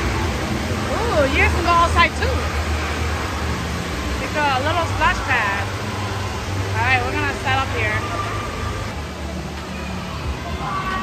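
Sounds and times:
echoing voices: 0.0 - 11.0
rumble of water and machinery: 0.0 - 11.0.

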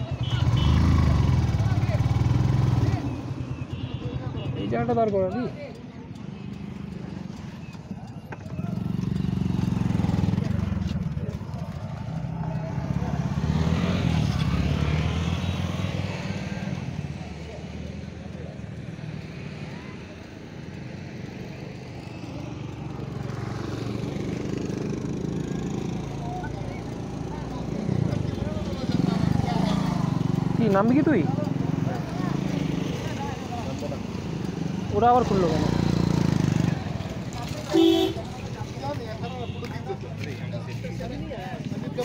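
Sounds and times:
motorcycle engine running: 0.0 - 3.9, 5.7 - 15.1, 22.6 - 40.3.

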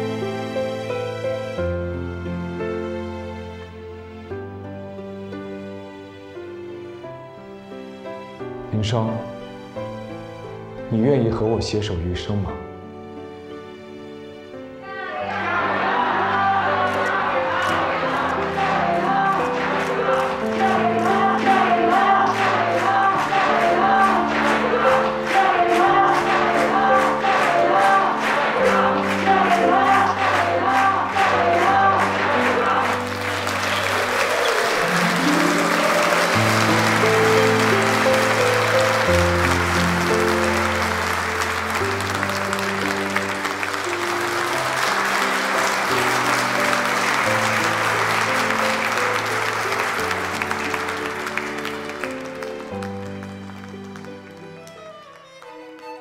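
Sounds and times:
crowd applauding: 14.8 - 56.0.

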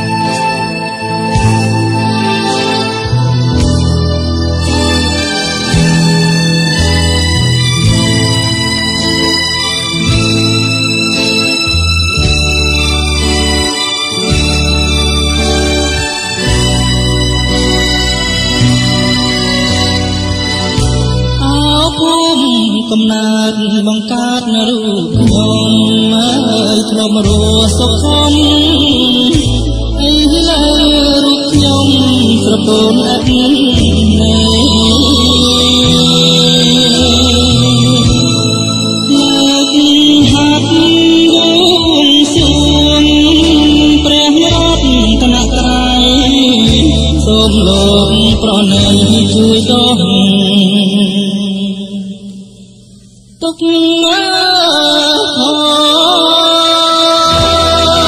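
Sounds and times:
old pop song playing: 0.0 - 58.0.

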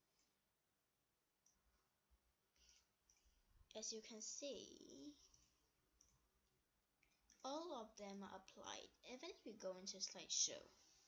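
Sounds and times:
person speaking: 3.7 - 5.4, 7.4 - 10.8.

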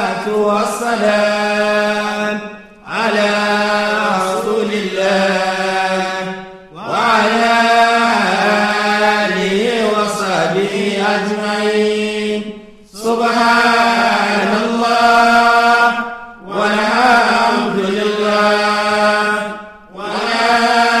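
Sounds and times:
person chanting: 0.0 - 21.0.

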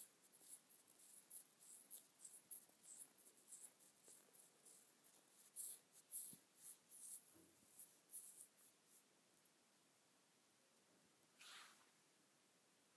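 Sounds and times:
faint scratching strokes: 0.0 - 9.1, 11.4 - 12.0.

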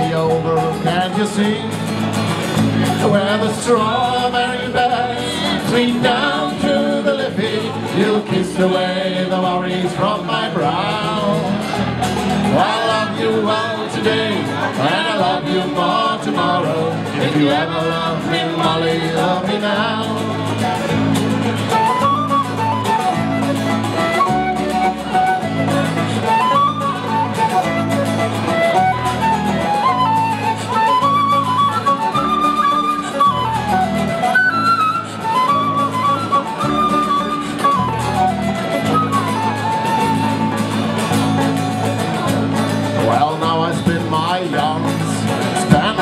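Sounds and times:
banjo: 0.0 - 46.0
strummed acoustic guitar: 0.0 - 46.0
flute melody: 18.2 - 44.8, 45.5 - 46.0.

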